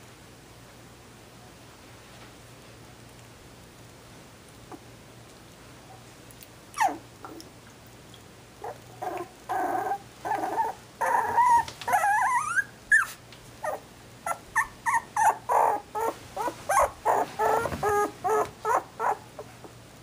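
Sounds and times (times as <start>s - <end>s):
puppies whining and yipping: 6.7s - 7.4s, 8.6s - 19.8s.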